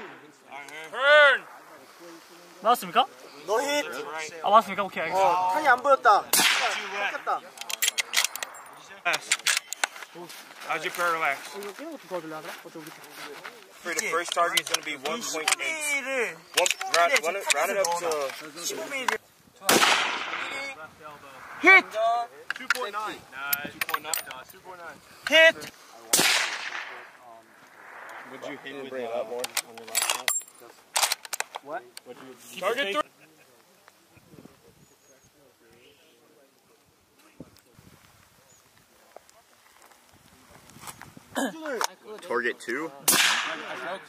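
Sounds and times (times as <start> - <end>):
faint distant voices: 0.0 - 44.0
rifle shot: 6.3 - 7.1, 19.6 - 20.6, 26.1 - 27.1, 43.1 - 43.9.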